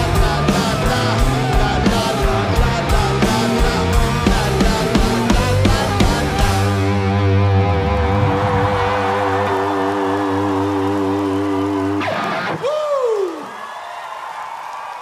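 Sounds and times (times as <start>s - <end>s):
live rock band: 0.0s - 12.7s
crowd noise: 0.0s - 15.0s.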